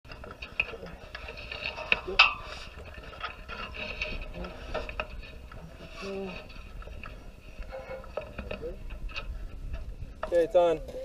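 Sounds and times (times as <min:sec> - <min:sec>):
low wind rumble on microphone: 0:00.1 - 0:11.0.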